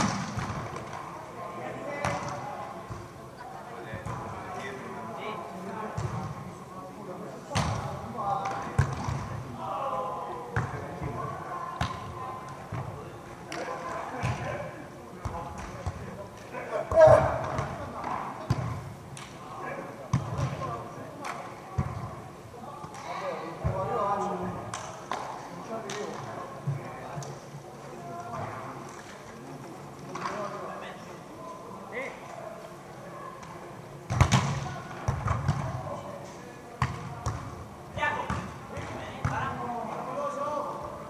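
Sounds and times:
players shouting: 16.6 - 17.5.

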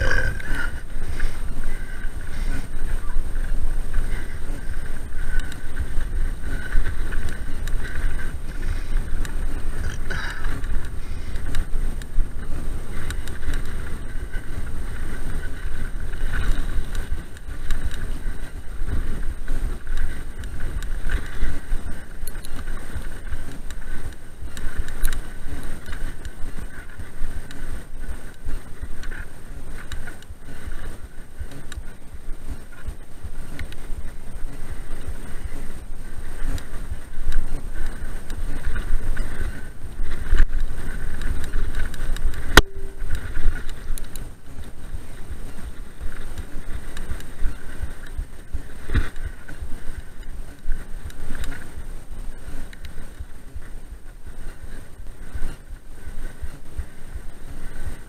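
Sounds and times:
bike rattling over bumps: 0.0 - 58.0
wind on microphone: 0.0 - 58.0.

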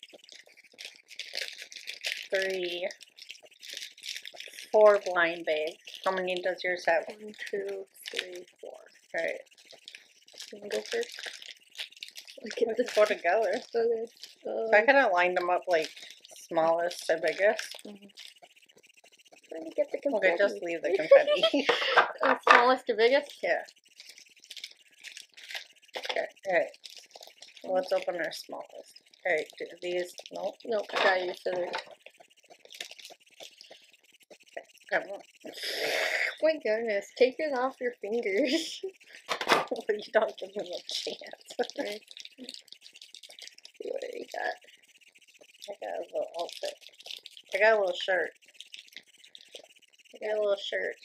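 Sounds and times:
foil and plastic packets crinkling: 0.0 - 14.5, 15.6 - 20.2, 23.7 - 35.5, 38.4 - 49.8
plastic toy pieces rattling: 0.0 - 51.0
foil bag handled: 9.1 - 14.4.

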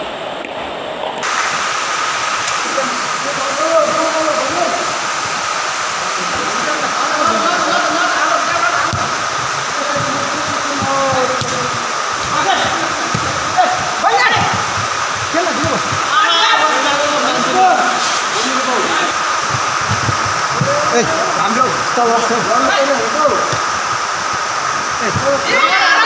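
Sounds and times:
steady hall hiss: 0.0 - 26.0
players shouting: 2.7 - 5.1, 6.0 - 19.6, 20.4 - 23.7, 25.0 - 26.0
ball being kicked: 9.9 - 11.8, 12.4 - 13.6.

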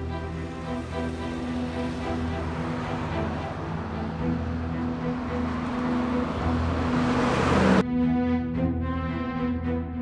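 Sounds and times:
vehicle approaching: 0.0 - 7.8
road traffic noise: 0.0 - 9.4.

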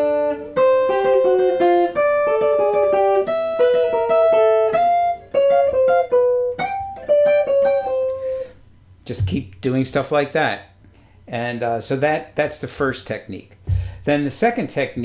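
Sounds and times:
electric guitar jazz line: 0.0 - 9.6.

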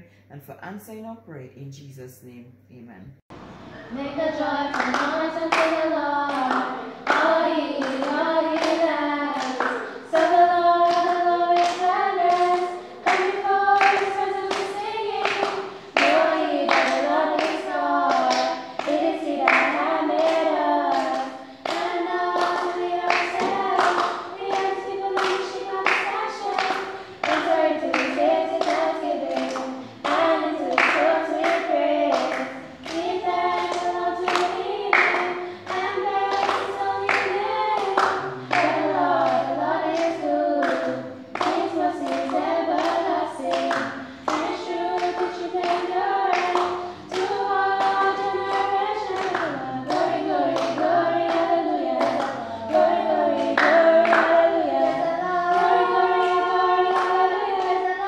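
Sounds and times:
girls singing in harmony: 3.4 - 58.0
hands clapping: 4.7 - 58.0.

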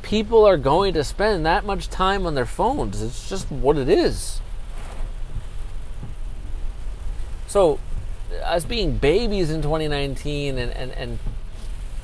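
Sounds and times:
low continuous rumble: 0.0 - 12.0
rain on car roof: 0.0 - 12.0.

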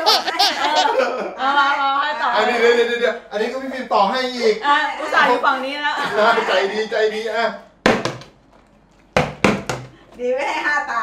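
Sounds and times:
plastic bottle knocking on table: 7.8 - 8.4, 9.2 - 10.0.

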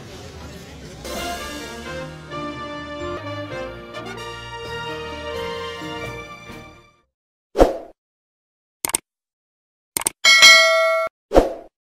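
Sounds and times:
bright bell ding: 10.2 - 11.1.

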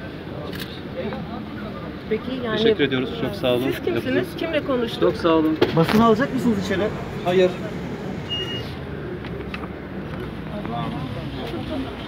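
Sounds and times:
indistinct crowd voices: 0.0 - 12.0
street noise: 0.0 - 12.0.

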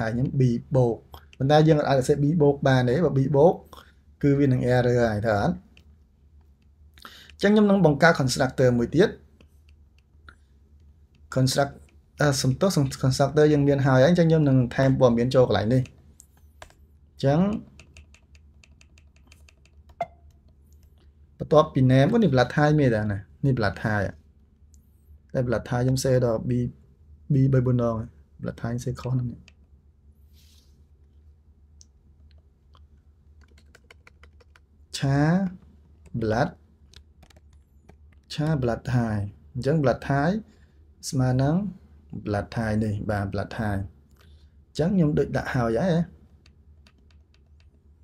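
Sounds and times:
person speaking: 0.0 - 5.9, 6.6 - 10.4, 11.1 - 29.6, 33.4 - 44.0, 44.8 - 47.8
keyboard keystrokes: 17.5 - 20.6, 33.4 - 34.7, 36.9 - 38.3, 46.4 - 47.8.

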